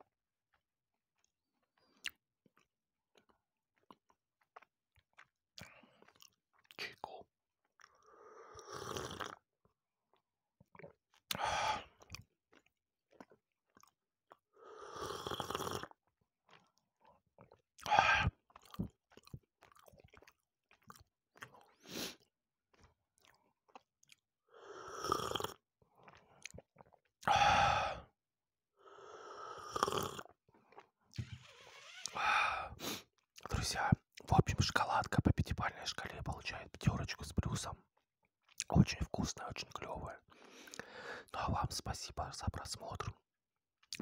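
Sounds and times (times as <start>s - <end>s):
chewing chocolate with nuts: 0.5s - 27.9s, 29.7s - 31.2s, 32.1s - 43.2s, 43.8s - 44.0s
breathy exhales and sighs: 11.3s - 12.0s, 17.8s - 18.4s, 27.3s - 28.1s, 31.2s - 33.1s, 40.3s - 41.4s
wet mouth clicks: 38.5s - 43.2s.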